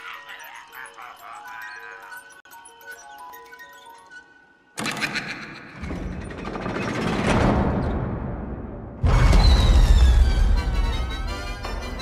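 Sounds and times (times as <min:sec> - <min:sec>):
horror film music: 0:00.0 - 0:12.0.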